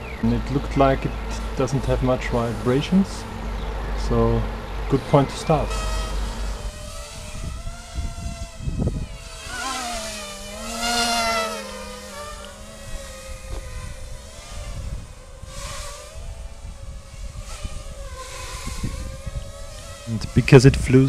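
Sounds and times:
quadcopter motors buzzing whine: 0:00.0 - 0:21.0.

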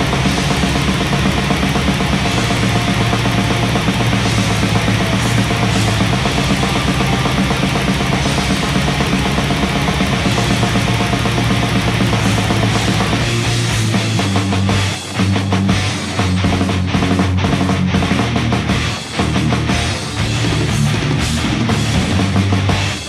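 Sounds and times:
distorted guitars: 0:00.0 - 0:23.0
rapid drumming: 0:00.0 - 0:23.0.

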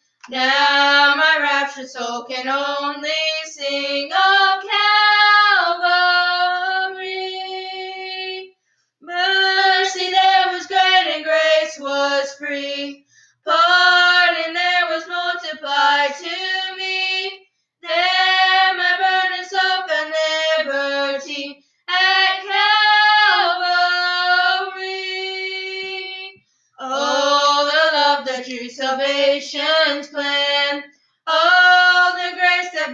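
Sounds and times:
women singing a hymn: 0:00.2 - 0:32.9.

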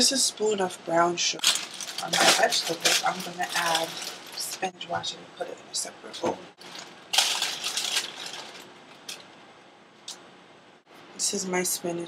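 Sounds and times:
faint rustling handling noise: 0:01.4 - 0:04.7, 0:06.6 - 0:09.4.

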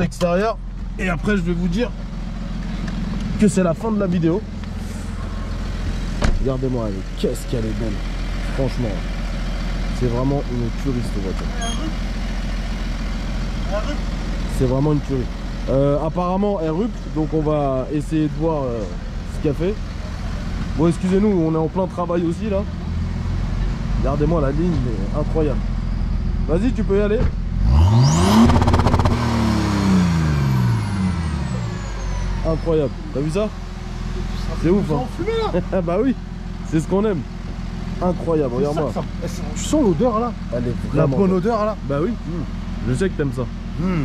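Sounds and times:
diesel engine idling: 0:00.0 - 0:44.0.

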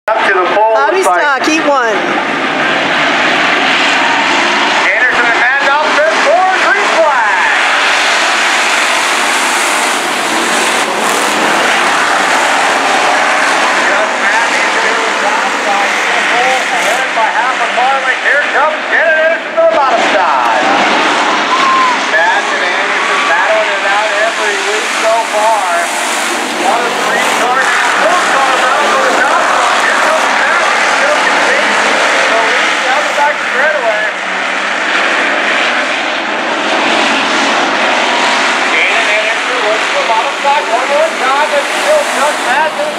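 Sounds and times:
race car engines revving: 0:00.0 - 0:42.9.

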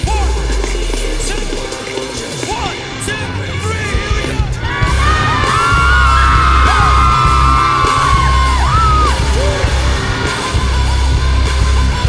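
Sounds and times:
live concert music with heavy bass: 0:00.0 - 0:12.0
long held shouts: 0:04.6 - 0:10.2.

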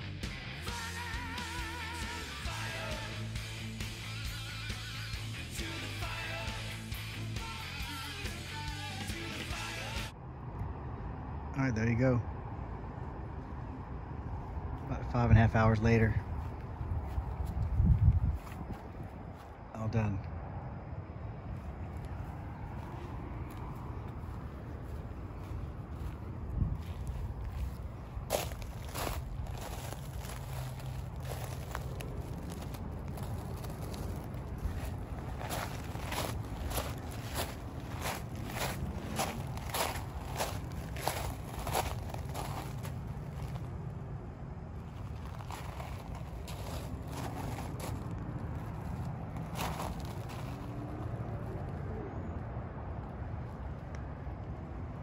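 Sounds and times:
low outdoor rumble: 0:00.0 - 0:55.0
footsteps on stone path: 0:21.9 - 0:43.6, 0:45.0 - 0:50.8.

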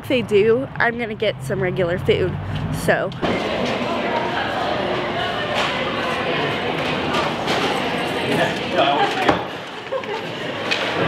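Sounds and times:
indistinct voices and bustle: 0:00.0 - 0:11.0.

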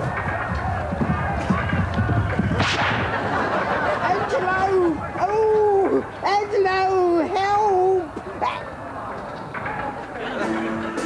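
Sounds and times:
low thuds: 0:00.0 - 0:03.4
sharp crack: 0:02.6 - 0:03.3.

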